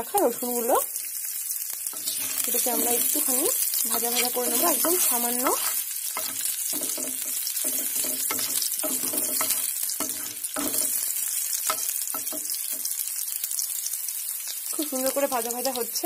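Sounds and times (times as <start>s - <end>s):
seeds sizzling in hot oil: 0.0s - 16.0s
spatula scraping a pan: 1.9s - 12.6s.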